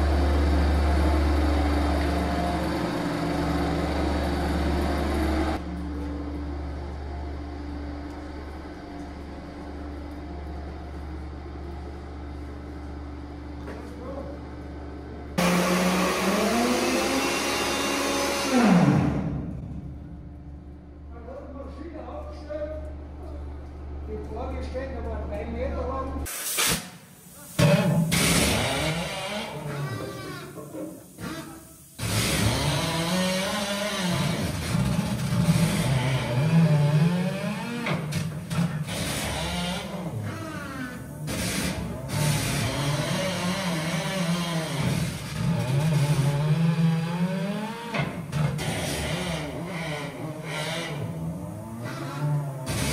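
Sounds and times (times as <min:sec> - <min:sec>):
steady low hum: 0:19.0 - 0:26.3.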